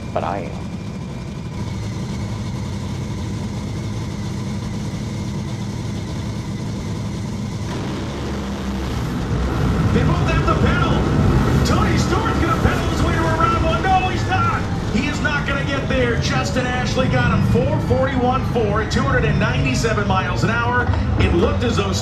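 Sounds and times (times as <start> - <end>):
dragster engine rumbling: 0.0 - 22.0.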